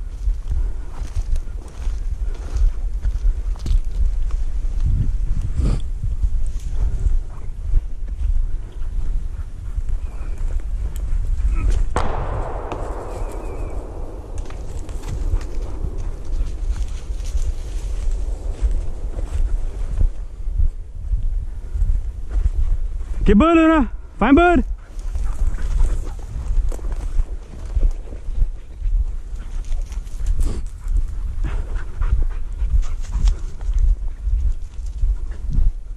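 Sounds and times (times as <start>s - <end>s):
steps through dry grass: 0.0s - 23.3s, 24.8s - 35.9s
wind rumble on microphone: 0.0s - 35.9s
panting breaths: 5.5s - 11.9s, 24.7s - 35.9s
shotgun shot echoing: 11.9s - 20.6s.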